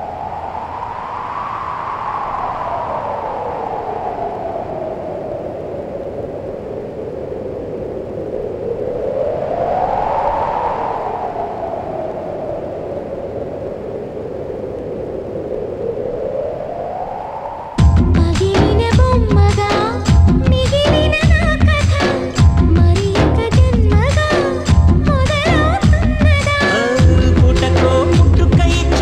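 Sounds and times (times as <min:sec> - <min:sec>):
wind-like whooshing: 0:00.0 - 0:29.0.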